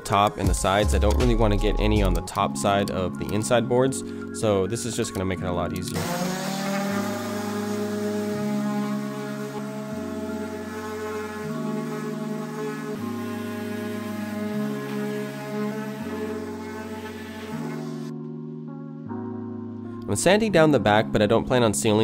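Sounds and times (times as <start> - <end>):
background music with bass chords: 0.0 - 22.0.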